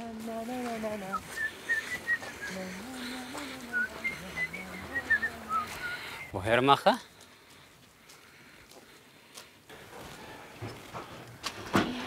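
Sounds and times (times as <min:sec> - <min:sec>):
footsteps on paved path: 0:00.0 - 0:11.6.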